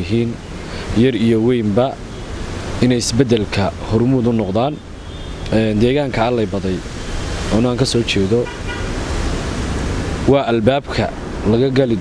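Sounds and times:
man speaking: 0.0s - 0.4s, 1.0s - 2.0s, 2.8s - 4.8s, 5.5s - 6.9s, 7.5s - 8.6s, 10.2s - 12.0s
background hiss: 0.0s - 12.0s.

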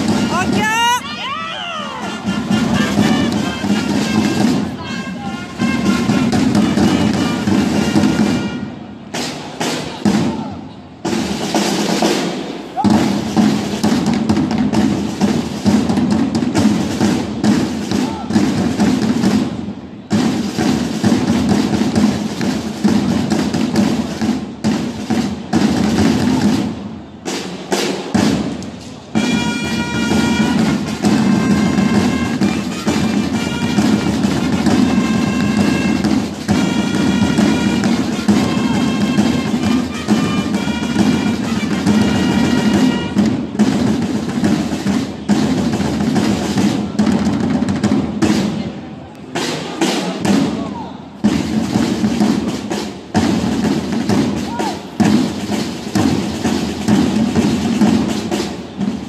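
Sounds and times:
drums rolling: 0.0s - 59.0s
long held trumpet notes: 2.0s - 9.0s, 29.2s - 43.4s.

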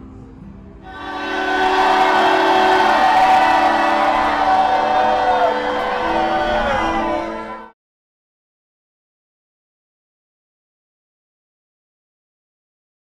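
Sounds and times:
sustained mass of held tones: 0.9s - 7.7s.

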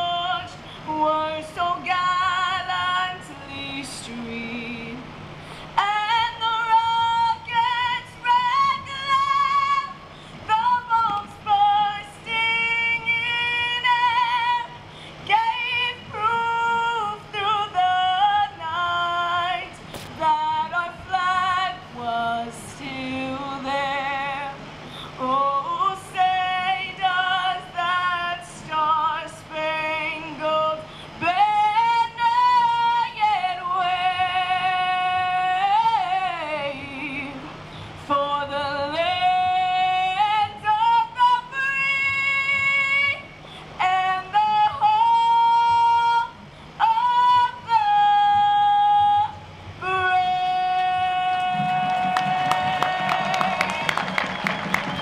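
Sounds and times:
woman singing into a microphone: 0.0s - 53.9s.

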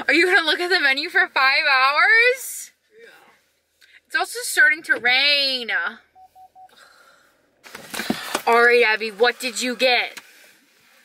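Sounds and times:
short electronic beeps: 6.1s - 6.8s
rustling noise: 7.6s - 11.0s.

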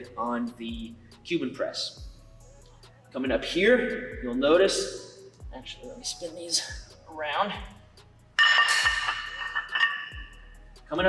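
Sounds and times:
background music with beat: 0.0s - 11.0s
metal weight plates ringing: 8.4s - 10.4s.

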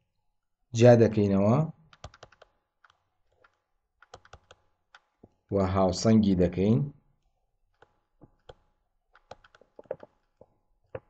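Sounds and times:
stylus clicking on tablet: 2.0s - 5.1s, 7.7s - 11.0s.

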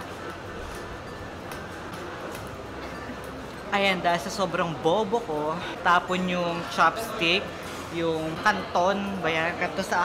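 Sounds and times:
faint background music: 0.0s - 10.0s
restaurant room noise: 0.0s - 10.0s.

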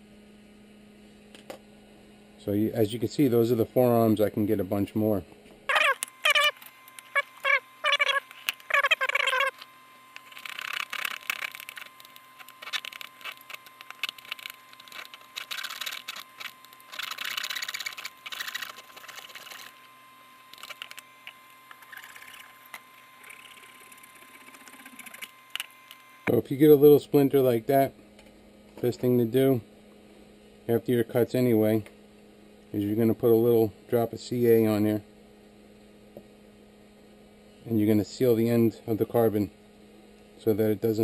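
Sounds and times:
short high squeaks: 5.7s - 19.9s, 20.5s - 26.0s.

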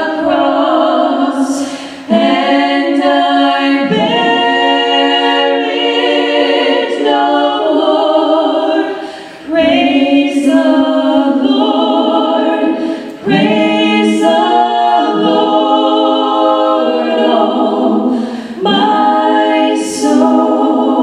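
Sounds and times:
women singing in harmony: 0.0s - 21.0s.

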